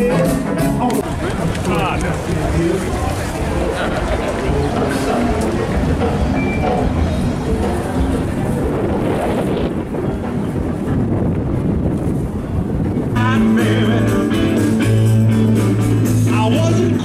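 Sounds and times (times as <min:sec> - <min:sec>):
voices of passers-by: 0:00.0 - 0:17.0
wind buffeting microphone: 0:01.0 - 0:13.6.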